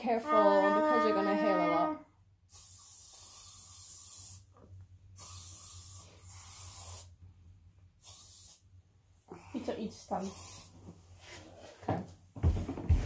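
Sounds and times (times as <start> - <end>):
aerosol can spraying: 2.5 - 4.6, 5.2 - 7.2, 8.0 - 8.7, 10.2 - 10.8.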